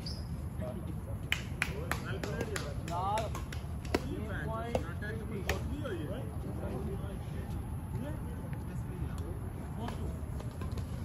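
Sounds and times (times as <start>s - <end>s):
rackets hitting shuttlecock: 1.3s - 5.8s, 9.1s - 11.0s.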